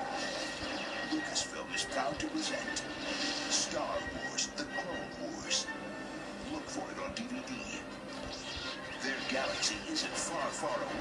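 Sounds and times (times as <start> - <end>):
trailer music from television: 0.0 - 11.0.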